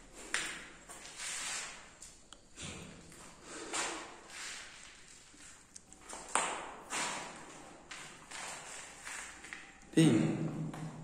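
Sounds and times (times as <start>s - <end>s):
footsteps on gritty floor: 3.1s - 9.8s.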